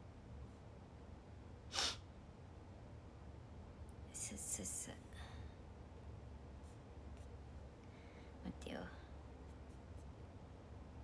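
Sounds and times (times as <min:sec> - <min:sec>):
low room hum: 0:00.0 - 0:11.0
woman whispering: 0:04.1 - 0:05.3, 0:08.4 - 0:09.1.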